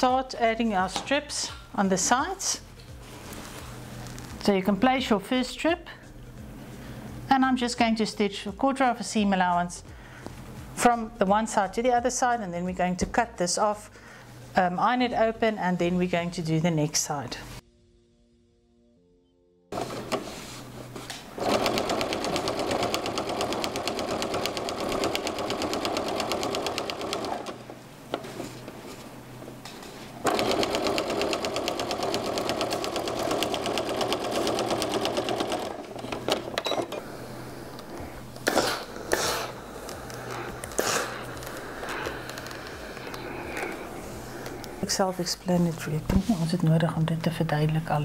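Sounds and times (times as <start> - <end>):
fabric rustling: 3.0 - 4.4, 37.8 - 46.6
sewing machine stitching: 19.7 - 28.6, 30.2 - 37.0.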